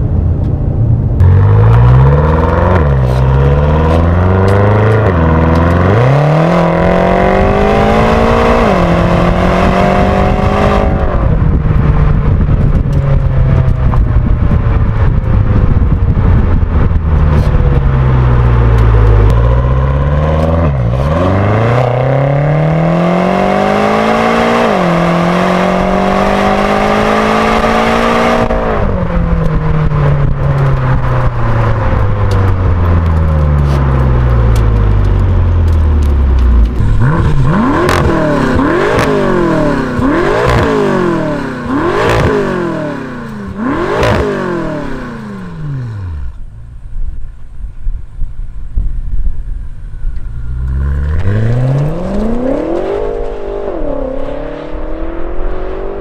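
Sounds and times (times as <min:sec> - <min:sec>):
car engine accelerating: 0:00.0 - 0:47.5, 0:49.4 - 0:56.0
engine revving blips: 0:33.1 - 0:46.5, 0:50.2 - 0:56.0.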